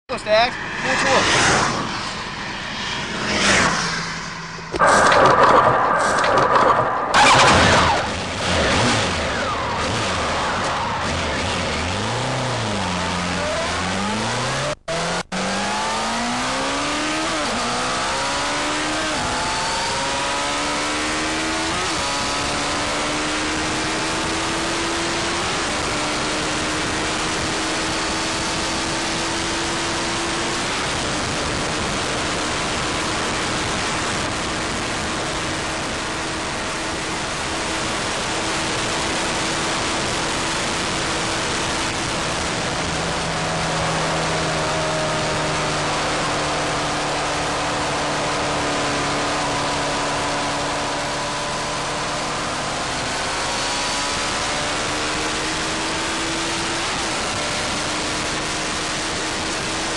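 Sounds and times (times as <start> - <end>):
motorcycle engine revving high: 0.5 - 59.9.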